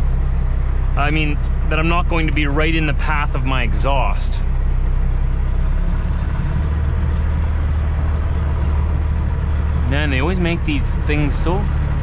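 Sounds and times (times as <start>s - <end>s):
diesel truck engine at low revs: 0.0s - 12.0s.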